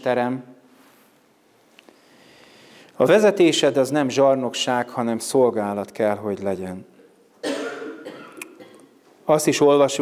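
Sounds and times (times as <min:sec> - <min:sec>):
man coughing: 0:07.4 - 0:09.0.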